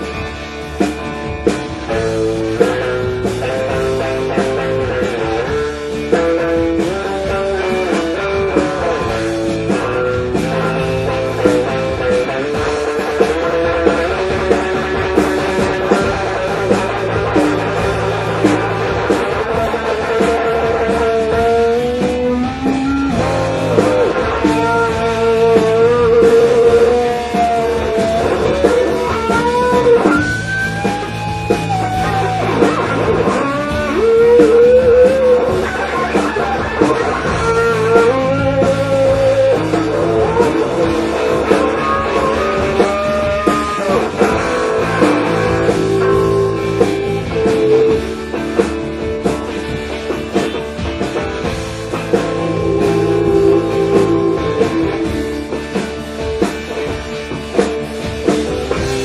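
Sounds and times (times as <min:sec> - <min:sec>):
live rock band playing: 0:00.0 - 0:59.0.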